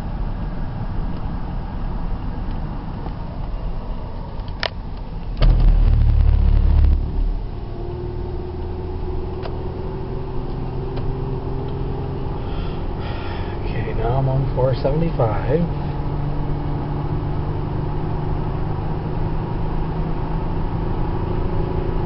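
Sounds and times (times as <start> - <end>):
road and engine noise in car: 0.0 - 22.0
loud low rumble: 5.3 - 10.3
steady drone: 5.4 - 10.3.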